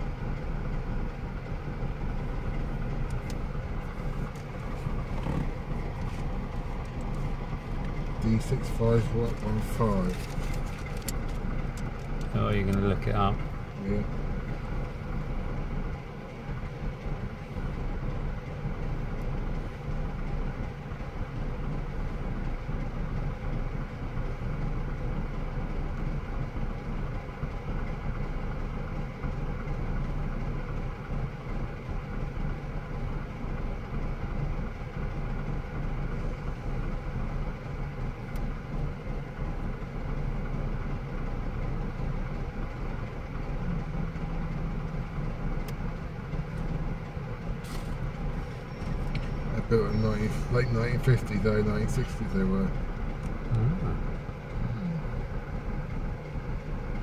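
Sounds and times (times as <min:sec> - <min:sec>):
engines idling: 0:00.0 - 0:57.0.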